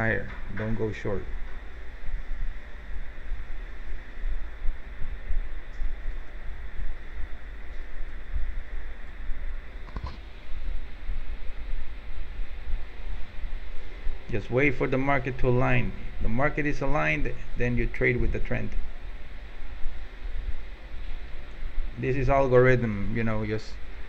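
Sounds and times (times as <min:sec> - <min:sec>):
low rumble and hum: 0:00.0 - 0:24.0.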